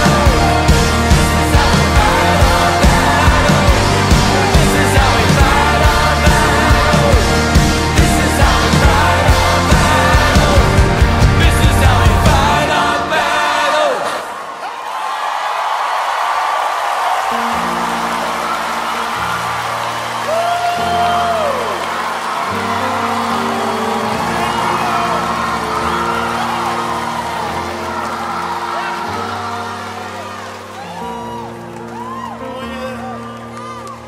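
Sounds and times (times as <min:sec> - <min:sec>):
stepping bass line: 0:00.0 - 0:12.8
held keyboard chords: 0:00.0 - 0:14.0, 0:17.2 - 0:34.0
crowd voices calling out: 0:00.0 - 0:34.0.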